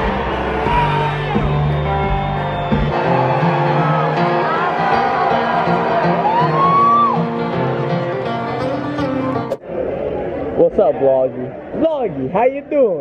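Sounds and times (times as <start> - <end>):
live country band: 0.0 - 9.6.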